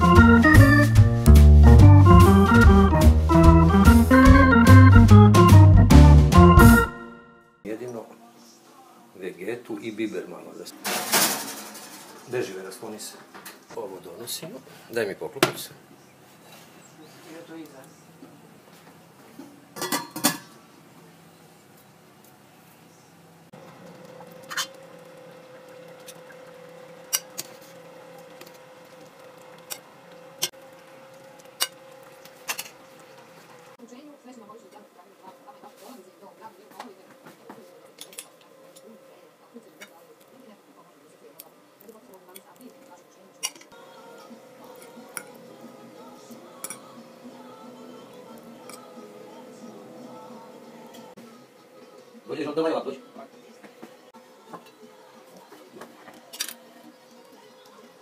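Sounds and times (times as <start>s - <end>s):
knife and fork clinking on plate: 46.6s - 46.9s.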